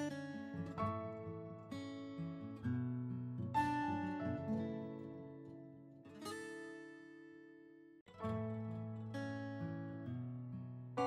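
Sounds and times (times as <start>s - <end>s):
acoustic guitar chord strummed: 0.0s - 11.0s.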